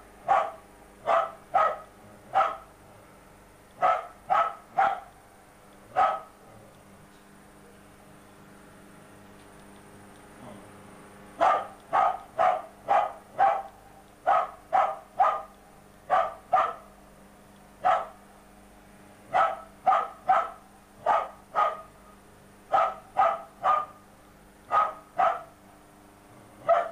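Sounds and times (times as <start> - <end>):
dog barking: 0.2 - 2.7, 3.8 - 5.1, 5.9 - 6.3, 11.4 - 15.5, 16.1 - 16.9, 17.8 - 18.2, 19.3 - 21.9, 22.7 - 24.0, 24.7 - 25.6, 26.6 - 26.9.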